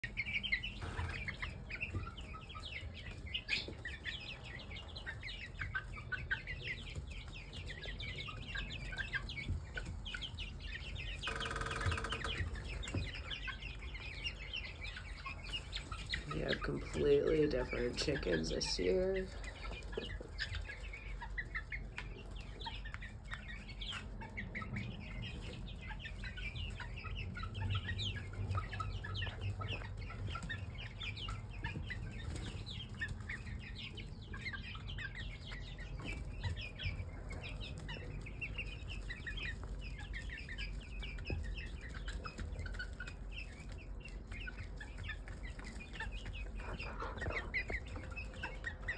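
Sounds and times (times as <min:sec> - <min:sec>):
chicks peeping and chirping: 0:00.0 - 0:48.9.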